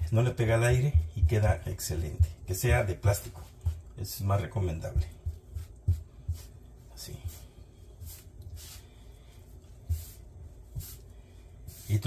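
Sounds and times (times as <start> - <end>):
hands rubbing and scraping dough: 2.5 - 12.0.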